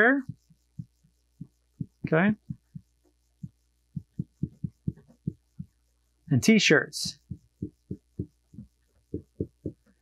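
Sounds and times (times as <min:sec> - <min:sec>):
dull knocks of whiteboard: 0:09.1 - 0:09.8.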